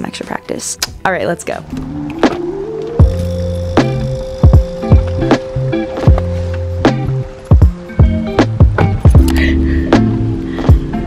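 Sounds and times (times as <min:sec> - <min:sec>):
rising run of notes: 0:01.4 - 0:07.2
beat with kick drums and bass: 0:03.0 - 0:11.0.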